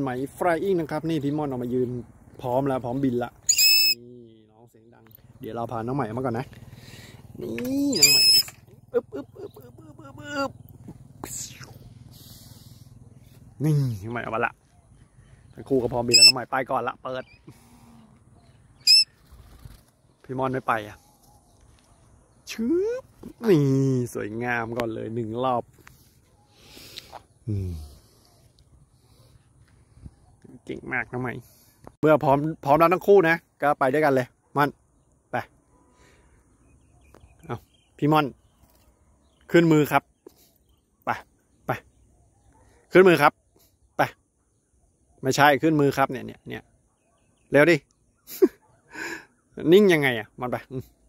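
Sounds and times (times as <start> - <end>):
cockatiel call: 3.5 - 4.0, 7.9 - 9.7, 16.1 - 16.5, 18.8 - 19.2
man calling out: 7.4 - 8.4, 9.6 - 10.6, 16.0 - 17.2.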